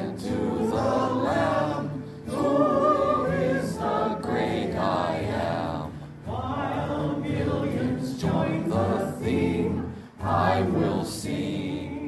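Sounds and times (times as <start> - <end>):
choir and congregation singing hymn: 0.0 - 12.0.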